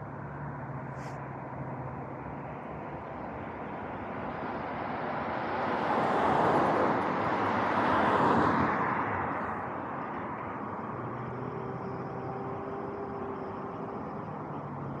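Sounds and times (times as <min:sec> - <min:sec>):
cars driving past: 0:00.0 - 0:15.0.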